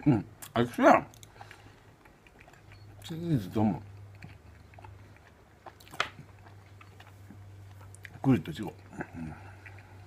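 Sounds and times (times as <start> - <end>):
chewing: 0.4 - 10.0.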